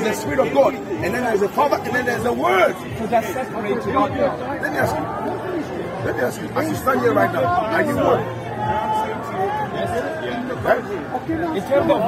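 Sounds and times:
men arguing: 0.0 - 12.0.

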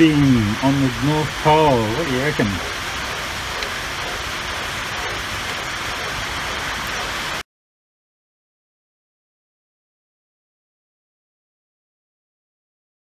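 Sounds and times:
rain drumming on a roof: 0.0 - 7.4.

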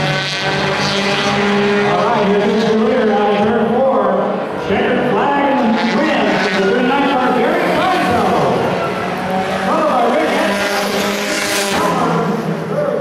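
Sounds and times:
race car engines passing: 0.0 - 13.0.

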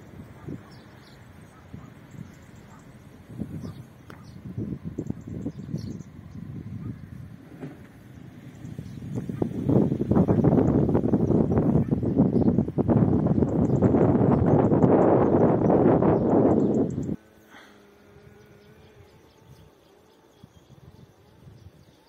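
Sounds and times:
wind buffeting microphone: 0.0 - 17.4, 18.0 - 22.0.

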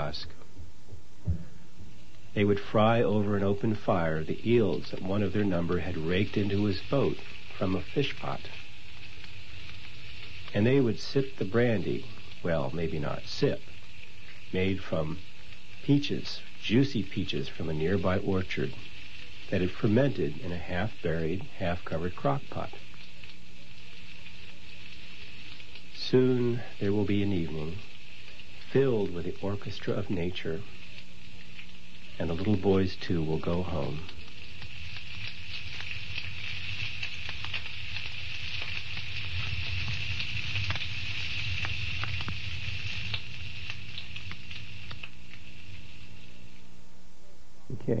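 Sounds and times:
fire burning hiss: 0.0 - 46.9
low steady hum: 0.0 - 48.0
insects trilling: 2.0 - 46.6.

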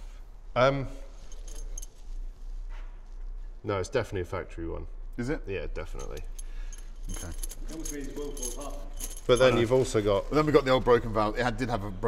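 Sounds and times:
light metallic clinks: 1.2 - 2.3, 5.8 - 10.1.

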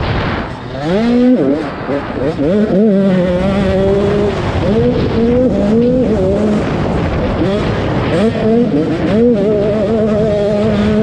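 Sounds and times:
motorbike engine revving: 0.0 - 11.0
wind rushing over microphone: 0.0 - 11.0.

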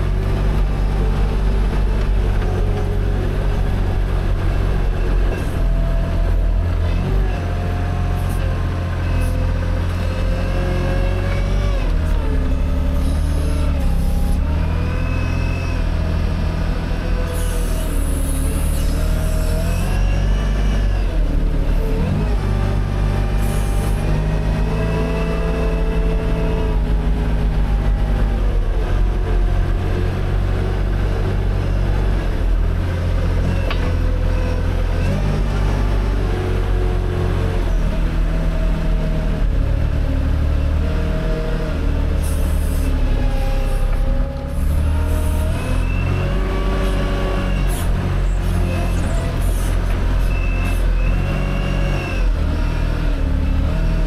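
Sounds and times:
tractor engine running: 0.0 - 54.0.

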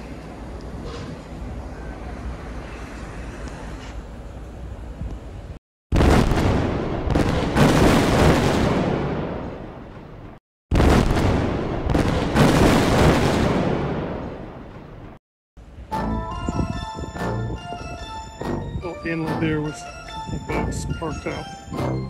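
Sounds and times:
explosion cracks: 5.9 - 15.2
explosion with rumble: 5.9 - 15.2.

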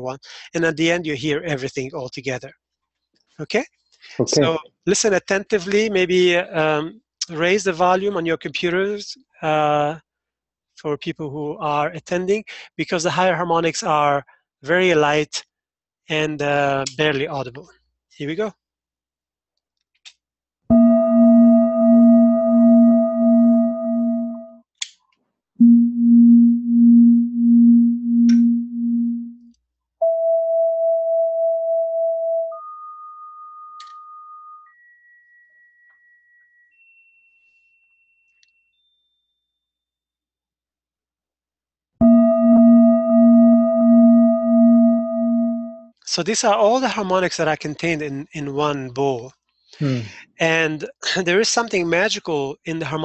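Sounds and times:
singing bowl harmonic tones: 32.5 - 39.3
singing bowl ringing: 32.5 - 39.7.

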